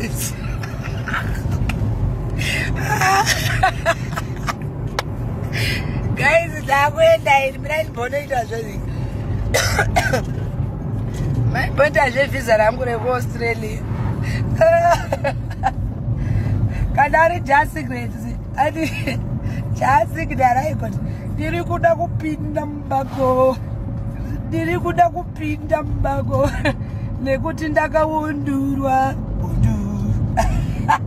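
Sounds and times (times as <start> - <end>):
steady low rumble: 0.0 - 31.0.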